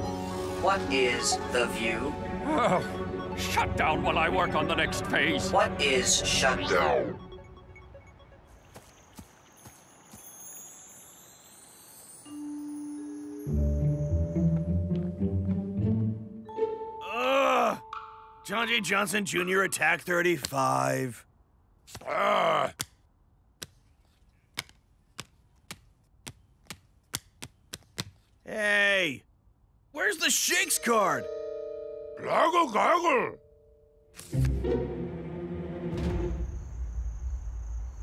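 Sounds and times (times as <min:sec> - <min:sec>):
low steady tone: 0:30.8 - 0:34.2.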